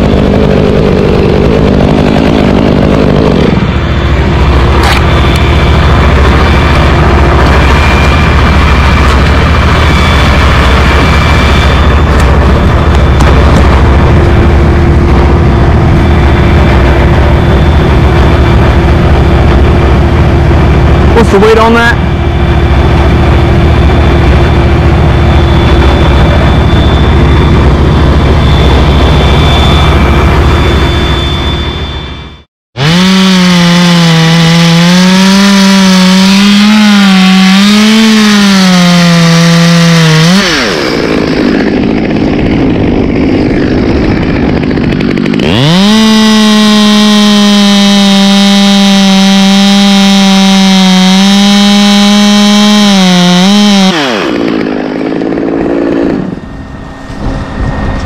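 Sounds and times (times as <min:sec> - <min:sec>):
chainsaw cutting: 0:00.0 - 0:31.3, 0:32.8 - 0:57.9
low engine rumble: 0:00.0 - 0:32.5, 0:54.6 - 0:58.0.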